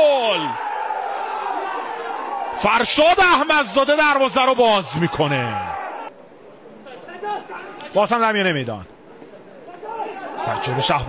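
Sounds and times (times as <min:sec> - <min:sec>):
background chatter of voices: 0:08.8 - 0:11.0.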